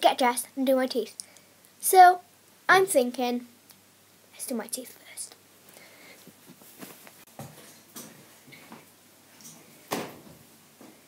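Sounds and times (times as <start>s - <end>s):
soft footsteps: 6.1s - 11.0s.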